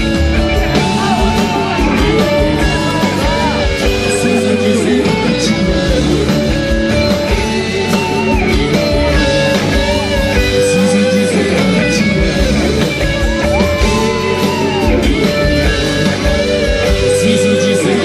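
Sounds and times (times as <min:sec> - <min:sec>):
guitars: 0:00.0 - 0:18.0
percussion: 0:00.0 - 0:18.0.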